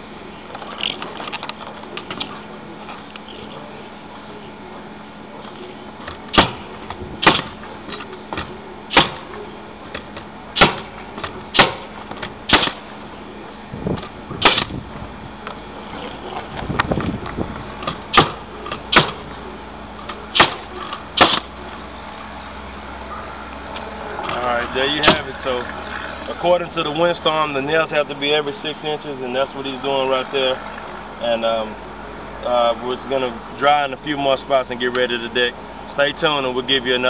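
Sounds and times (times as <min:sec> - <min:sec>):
nail gun firing: 0:06.3 - 0:06.6, 0:07.2 - 0:07.5, 0:08.9 - 0:09.3, 0:10.6 - 0:10.9, 0:11.5 - 0:11.9, 0:12.5 - 0:12.8, 0:14.4 - 0:14.7, 0:18.1 - 0:19.2, 0:20.3 - 0:20.6, 0:21.2 - 0:21.5.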